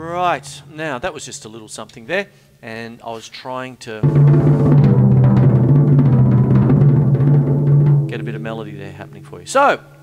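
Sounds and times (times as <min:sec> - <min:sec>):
tom-tom drum roll: 0:04.0 - 0:09.5.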